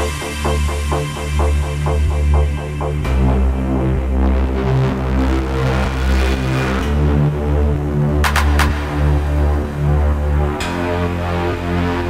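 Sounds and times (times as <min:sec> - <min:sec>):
techno music: 0:00.0 - 0:12.0.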